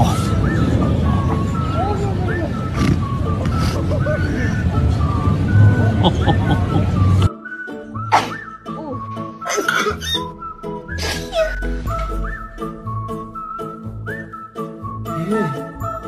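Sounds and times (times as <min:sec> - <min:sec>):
whistled melody: 0:00.0 - 0:16.0
repeating bass line: 0:10.3 - 0:14.1.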